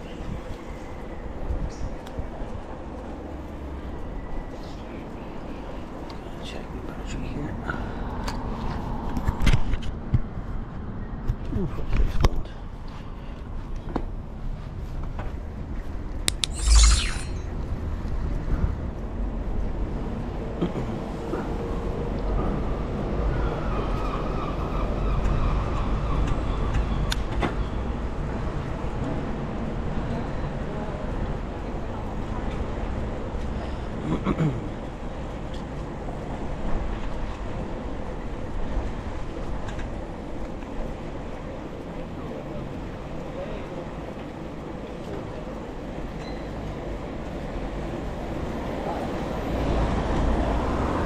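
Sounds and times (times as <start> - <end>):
brief high squeal: 16.3 - 17.6
bicycle tyre and road noise: 34.7 - 51.0.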